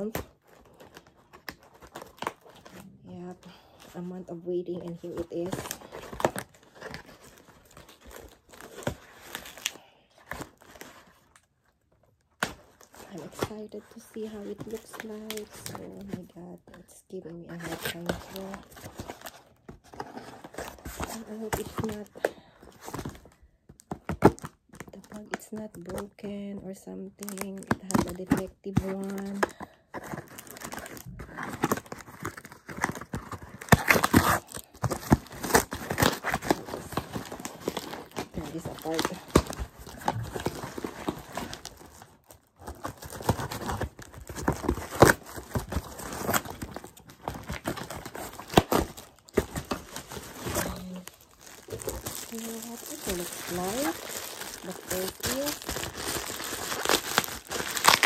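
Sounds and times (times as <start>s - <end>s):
cardboard and tape crinkling and tearing: 0.0s - 58.0s.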